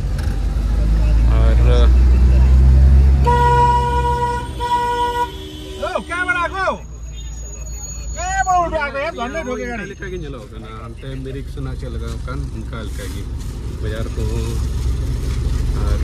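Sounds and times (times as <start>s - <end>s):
road noise: 0.0s - 16.0s
van engine rumble: 0.0s - 16.0s
vehicle horn honking: 3.2s - 6.8s.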